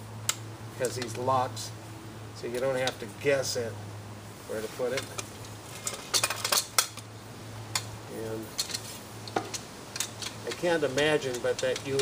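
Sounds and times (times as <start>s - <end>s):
metal easel clicks and rattles: 4.9s - 7.1s, 7.7s - 12.0s.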